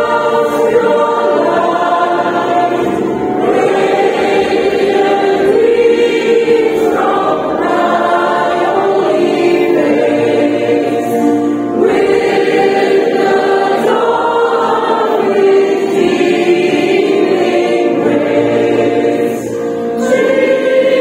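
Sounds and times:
mixed choir singing a carol: 0.0 - 21.0.

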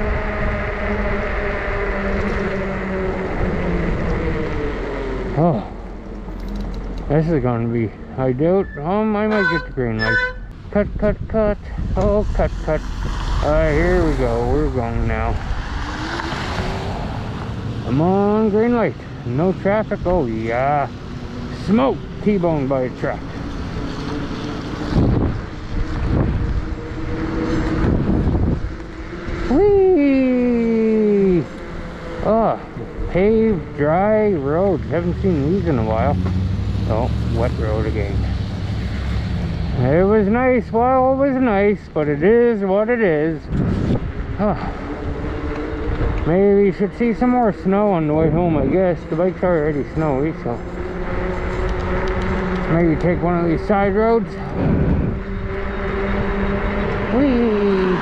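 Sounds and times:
electric bike motor whine: 0.0 - 6.2, 23.3 - 29.6, 50.6 - 58.0
wind buffeting microphone: 0.0 - 8.7, 10.5 - 58.0
tire noise on wet pavement: 0.0 - 58.0
tires hissing on wet pavement: 11.7 - 18.6.

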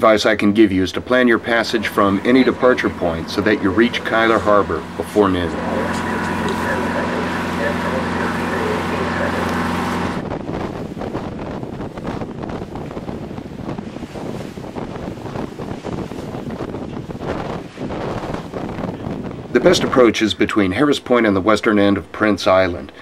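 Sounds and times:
wind buffeting microphone: 0.0 - 20.2
boat engine droning: 0.0 - 23.0
rushing water: 0.0 - 23.0.

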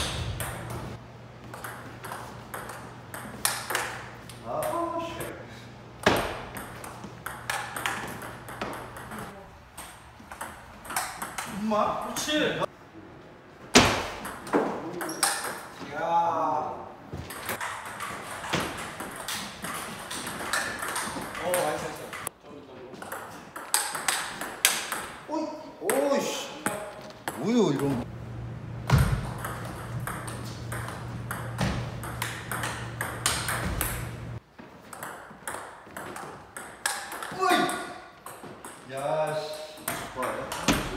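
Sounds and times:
low steady hum: 28.0 - 34.4.

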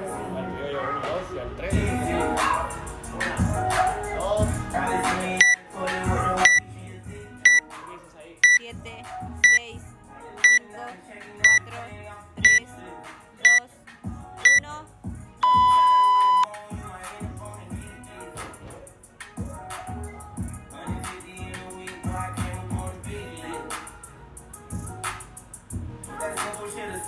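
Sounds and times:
background music: 0.0 - 27.0
short high timer beeps: 9.4 - 9.6, 15.4 - 16.5
long lower beep: 15.4 - 16.5.

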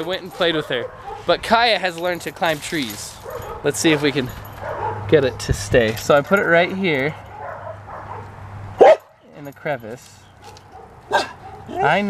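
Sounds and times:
dog barking: 0.2 - 1.3, 3.2 - 5.1, 7.3 - 9.2, 10.4 - 12.0.

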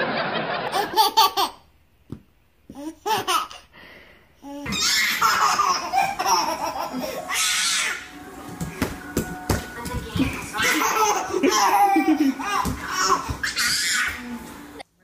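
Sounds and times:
baby laughing: 0.7 - 1.7, 2.7 - 3.7, 4.4 - 8.1, 10.1 - 14.2.

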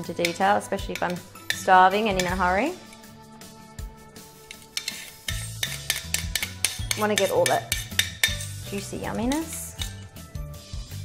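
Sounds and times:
background music: 0.0 - 11.0
metal tongs clicking on plate: 4.4 - 8.5, 9.3 - 10.0.

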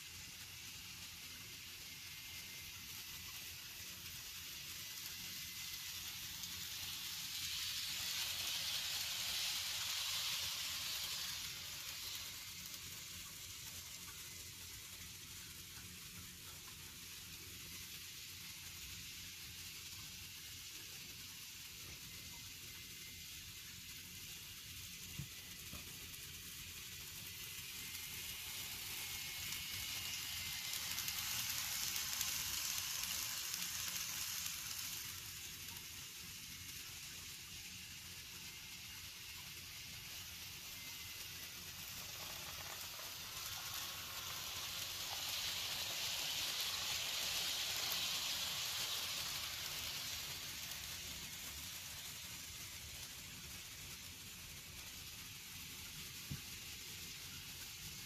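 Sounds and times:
faint motor whine: 0.0 - 58.0
model train wheels rattling on rails: 0.0 - 58.0.

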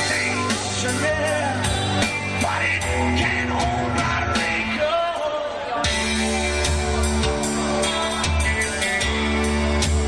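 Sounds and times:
electric guitar: 0.0 - 10.0
rock band playing live: 0.0 - 10.0.

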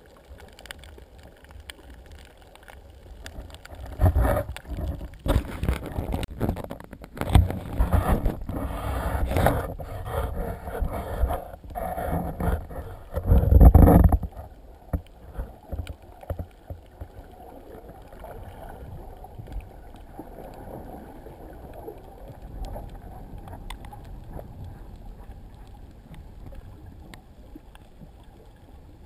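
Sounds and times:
sea water splashing: 0.0 - 29.0
muffled underwater hiss: 7.6 - 29.0.

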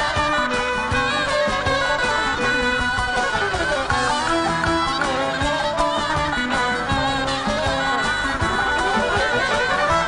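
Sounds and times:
folk band playing: 0.0 - 10.0
long-necked lute melody: 0.0 - 10.0
violin melody: 0.0 - 10.0.

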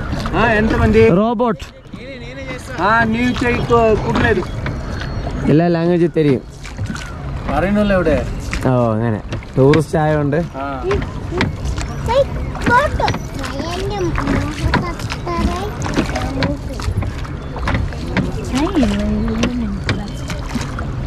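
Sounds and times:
oars dipping into water: 0.0 - 21.0
oars in oarlocks: 0.0 - 21.0.

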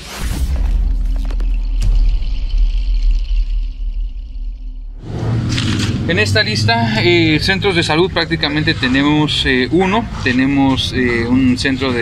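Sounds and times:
deep bass rumble: 0.2 - 12.0.

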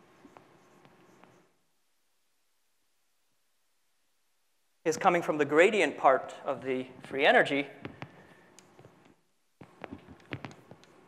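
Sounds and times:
chalk tapping and scratching: 0.0 - 1.5, 7.8 - 11.0.

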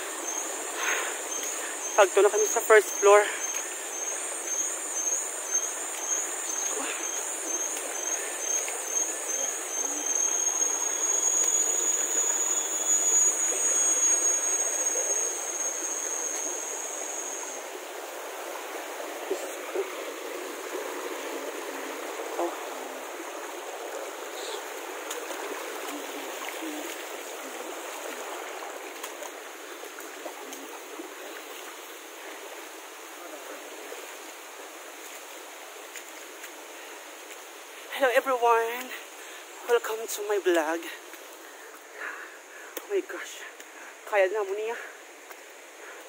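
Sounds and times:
stream water rushing: 0.0 - 46.0
high-pitched whine: 7.4 - 18.2.

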